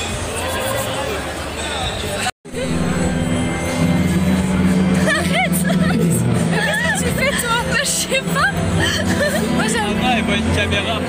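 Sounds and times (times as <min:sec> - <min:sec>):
crowd chatter: 0:00.0 - 0:11.0
background music: 0:02.5 - 0:11.0.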